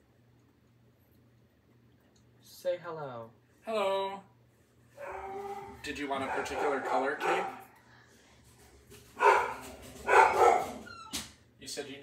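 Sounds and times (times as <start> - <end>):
dog barking: 5.0 - 7.7, 9.2 - 10.9.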